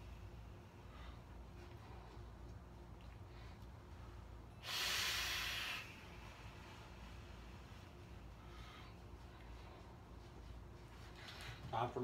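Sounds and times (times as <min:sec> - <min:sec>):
forceful exhale hiss: 0:04.6 - 0:07.0.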